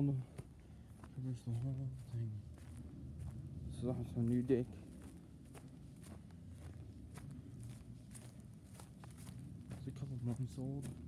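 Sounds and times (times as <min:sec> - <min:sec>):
footsteps on grass and dirt: 0:00.0 - 0:11.0.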